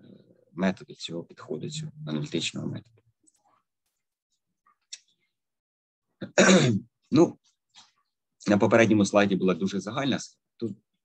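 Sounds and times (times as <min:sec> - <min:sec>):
man clearing his throat: 0:06.2 - 0:06.9.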